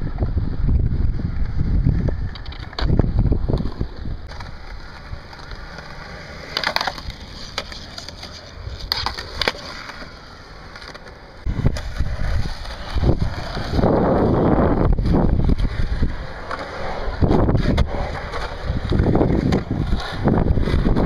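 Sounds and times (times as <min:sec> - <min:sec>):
skateboard wheels rolling on concrete: 0:00.0 - 0:21.0
skateboard clacks: 0:01.3 - 0:21.0.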